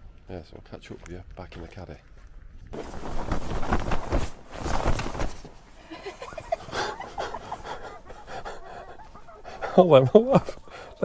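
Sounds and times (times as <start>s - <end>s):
clothing rustling: 2.7s - 10.7s
stifled laughs: 5.8s - 10.9s.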